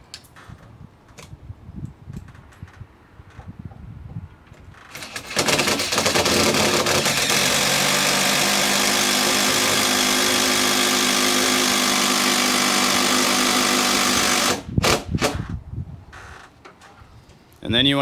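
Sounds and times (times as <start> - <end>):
power drill driving screw: 4.9 - 15.5.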